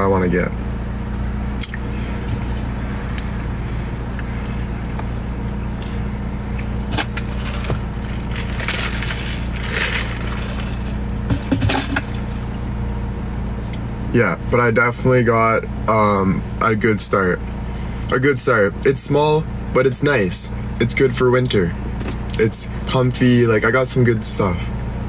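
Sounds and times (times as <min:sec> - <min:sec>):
car cabin engine hum: 0:00.0 - 0:25.0
ice rattling in cup: 0:07.3 - 0:10.9.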